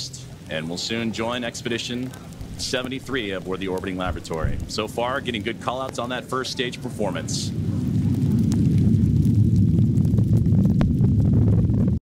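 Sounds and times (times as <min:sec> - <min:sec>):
rocket engines deep rumble: 0:00.0 - 0:12.0.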